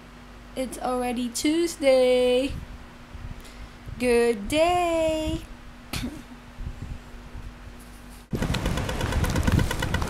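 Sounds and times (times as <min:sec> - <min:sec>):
faint steady hum: 0:00.0 - 0:10.0
fast high ticks: 0:08.3 - 0:10.0.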